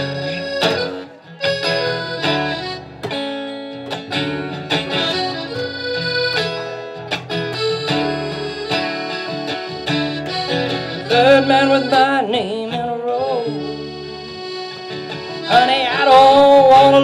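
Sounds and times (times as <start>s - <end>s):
acoustic guitar strumming: 0.0s - 17.0s
harmonica playing: 0.0s - 17.0s
upright bass: 0.0s - 17.0s.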